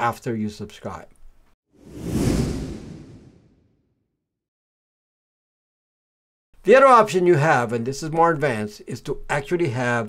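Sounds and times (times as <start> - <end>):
whoosh with deep rumble: 1.8 - 3.7.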